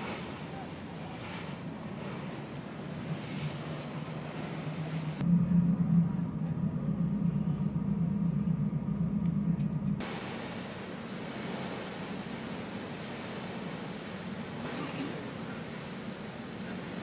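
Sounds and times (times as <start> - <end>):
motor boat engine rumble: 0.0 - 17.0
wind and sea hiss: 0.0 - 17.0.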